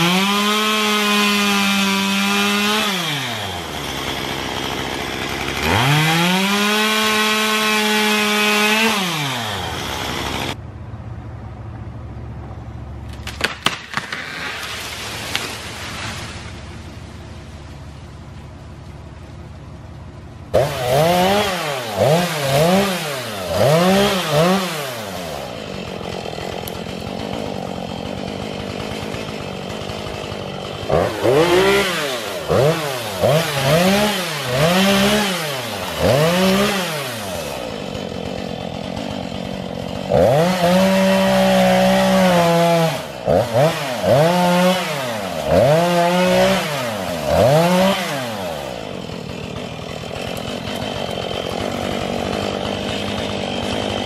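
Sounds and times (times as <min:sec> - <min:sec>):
chainsaw revving: 0:00.0 - 0:10.6, 0:20.5 - 0:54.0.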